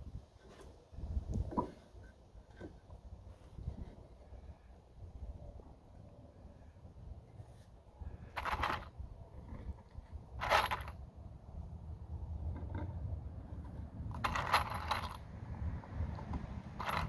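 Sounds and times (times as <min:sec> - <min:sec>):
screws rattling in plastic tub: 0:08.2 - 0:09.0, 0:10.4 - 0:11.0, 0:14.1 - 0:15.2, 0:16.2 - 0:17.0.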